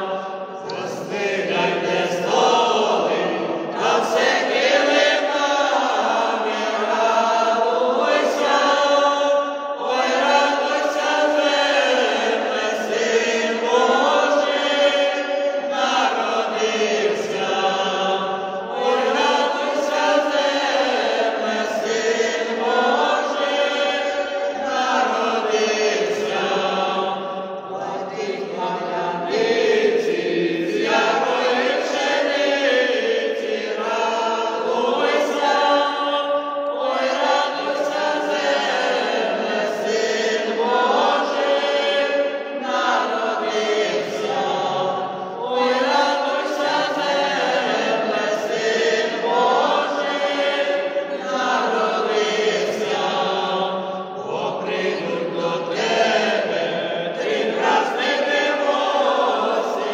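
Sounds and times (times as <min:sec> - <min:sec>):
vocal ensemble singing a cappella: 0:00.0 - 0:59.9.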